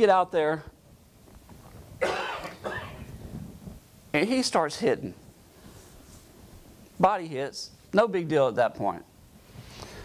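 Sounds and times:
person coughing: 2.0s - 3.1s.

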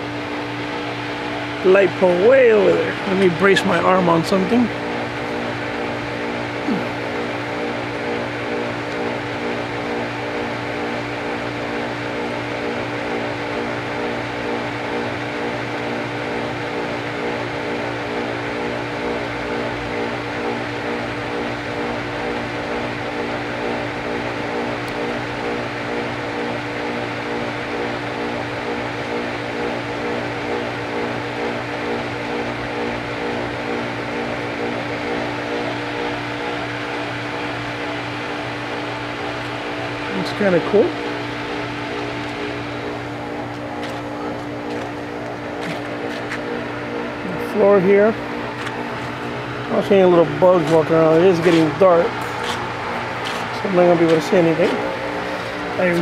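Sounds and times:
pool pump motor humming: 0.0s - 56.0s
person talking: 1.6s - 4.8s, 40.0s - 41.0s, 47.2s - 48.2s, 49.7s - 52.6s, 53.2s - 56.0s.

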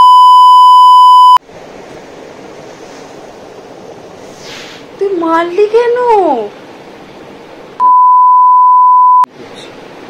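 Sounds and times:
censor bleep: 0.0s - 1.4s, 7.8s - 9.3s.

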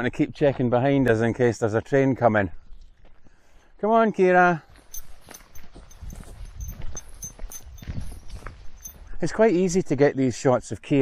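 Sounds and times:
footsteps on gravel: 0.3s - 9.3s.

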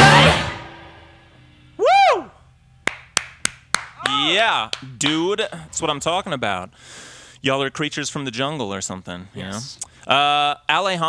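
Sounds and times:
person whooping: 1.8s - 2.4s, 4.0s - 4.6s
person clapping: 2.8s - 5.1s.

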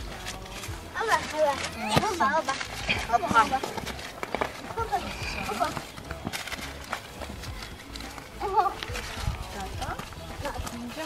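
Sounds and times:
paper notes rustling and clicking: 0.0s - 11.0s
voices: 0.0s - 11.0s.

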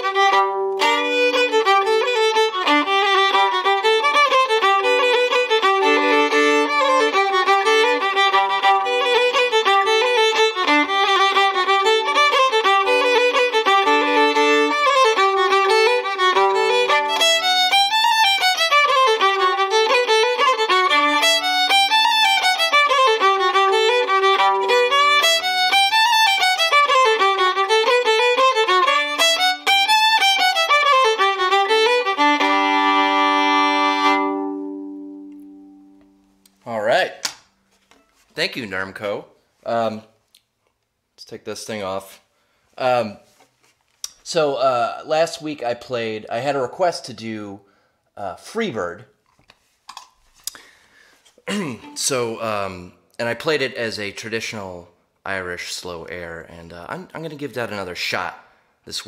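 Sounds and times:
solo fiddle playing fast tune: 0.0s - 35.7s, 51.8s - 52.8s.

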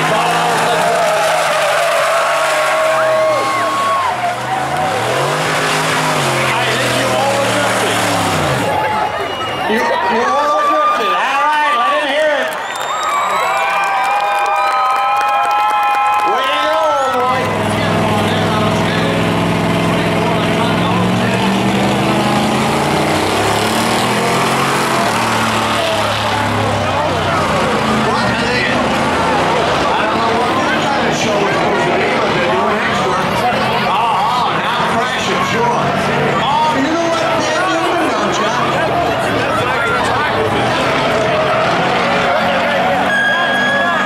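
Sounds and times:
pickup engine revving: 0.0s - 9.3s, 17.2s - 44.0s
tires squealing: 0.0s - 13.9s, 15.0s - 44.0s.

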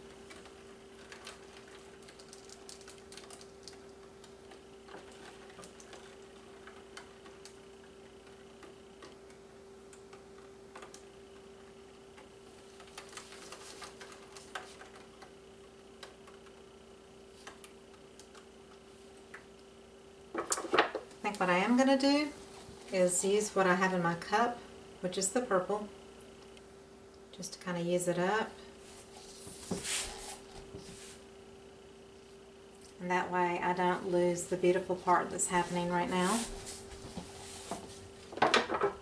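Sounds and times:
steady low hum: 0.0s - 39.0s.

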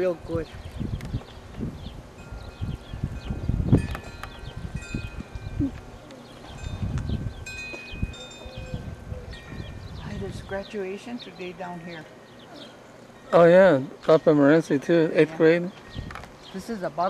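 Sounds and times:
wind chimes ringing: 2.2s - 9.8s, 13.0s - 16.2s.

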